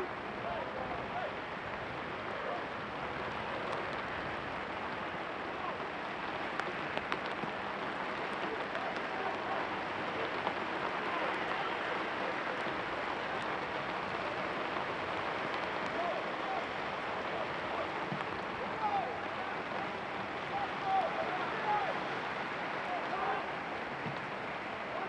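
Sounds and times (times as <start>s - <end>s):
steady rain hiss: 0.0s - 25.0s
distant shouts of players: 15.9s - 23.8s.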